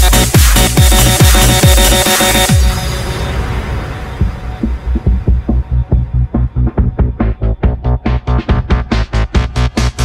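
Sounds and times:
bass kick drum beating: 0:00.0 - 0:02.8, 0:04.2 - 0:10.0.

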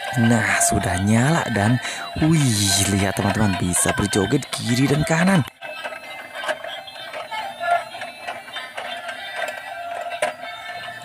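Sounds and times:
toy playing electronic tune: 0:00.0 - 0:11.0
toy clicks: 0:00.6 - 0:11.0.

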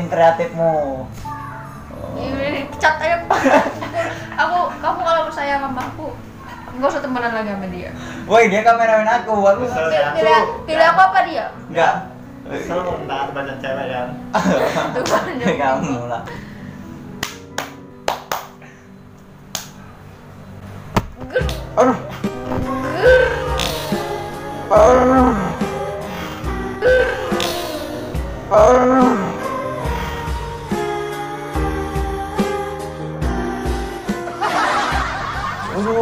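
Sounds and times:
guitar music: 0:01.1 - 0:07.4, 0:20.2 - 0:36.0
sharp hand claps: 0:17.2 - 0:18.6, 0:19.5 - 0:19.8
snickering laughter: 0:34.4 - 0:36.0.

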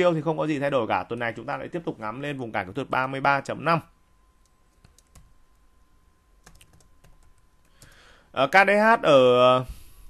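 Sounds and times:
keyboard keystrokes: 0:04.4 - 0:05.4, 0:06.4 - 0:08.0.

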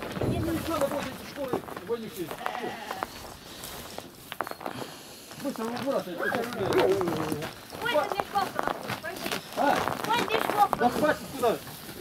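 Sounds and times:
sheep bleating: 0:02.3 - 0:03.2
people's voices: 0:04.8 - 0:12.0.

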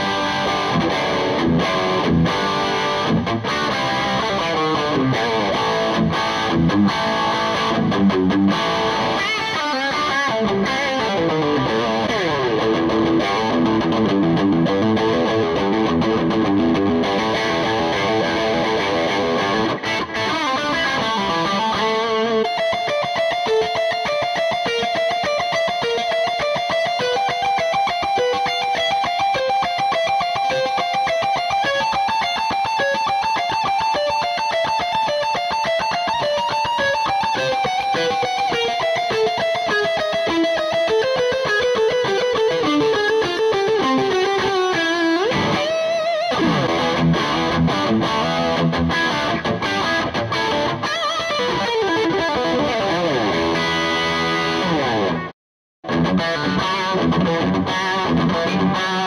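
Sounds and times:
distorted electric guitar solo: 0:00.0 - 0:59.0.

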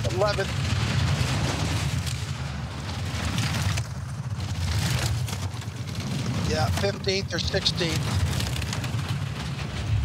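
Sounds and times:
sled runners rumbling on ice: 0:00.0 - 0:10.0.

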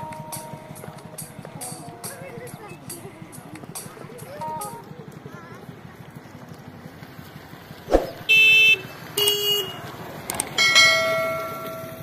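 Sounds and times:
bell-like ding: 0:10.6 - 0:12.0.

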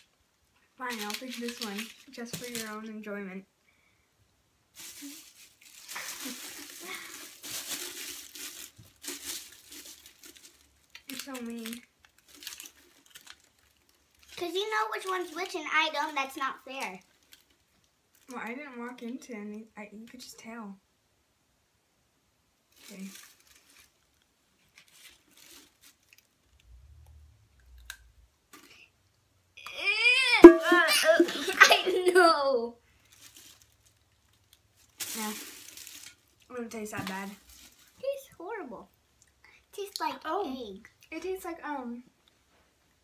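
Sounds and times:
wrapper crinkling and rustling: 0:00.8 - 0:02.9, 0:04.7 - 0:18.6, 0:22.7 - 0:26.6, 0:32.9 - 0:38.4.

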